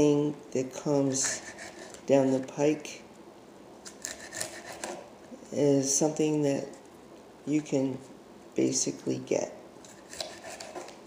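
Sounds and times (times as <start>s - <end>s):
knife cutting leafy greens: 3.9s - 5.0s, 9.8s - 11.0s.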